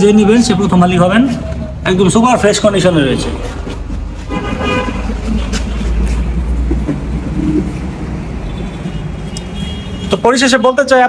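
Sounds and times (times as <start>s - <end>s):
heavy vehicle rumbling: 0.0s - 10.3s
road traffic passing: 0.0s - 11.0s
vehicle horn tooting: 4.3s - 5.2s, 8.4s - 10.3s.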